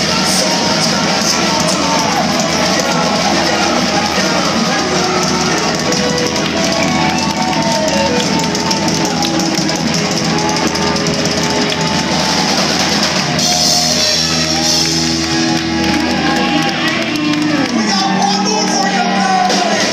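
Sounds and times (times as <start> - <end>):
live rock band playing: 0.0 - 19.9.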